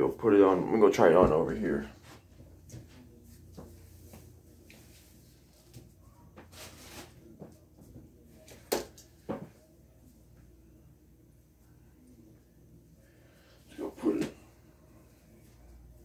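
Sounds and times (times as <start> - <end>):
faint knocks and rustles: 1.0 - 6.6.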